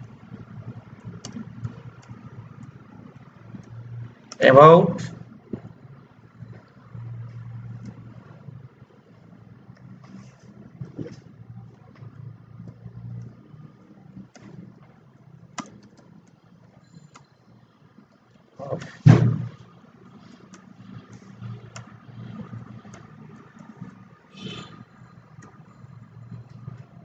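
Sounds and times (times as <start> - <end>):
keyboard typing clicks: 0.0 - 4.4, 15.5 - 17.4, 20.2 - 26.9
soft rustle: 10.0 - 11.3
loud thump: 19.0 - 19.6.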